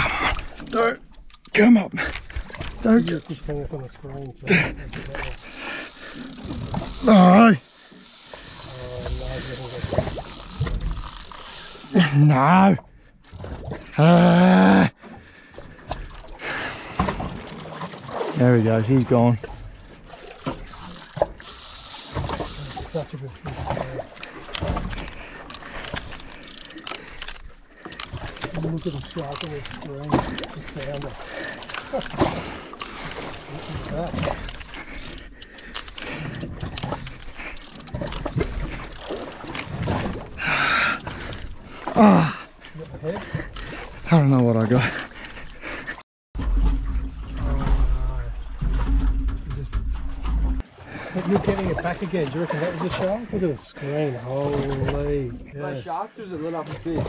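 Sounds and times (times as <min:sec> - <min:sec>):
water noise: 0:00.0 - 0:57.0
wind: 0:00.0 - 0:57.0.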